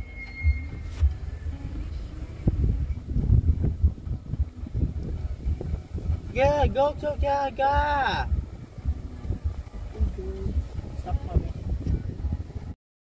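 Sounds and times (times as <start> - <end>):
wind buffeting a microphone: 0.4 - 12.8.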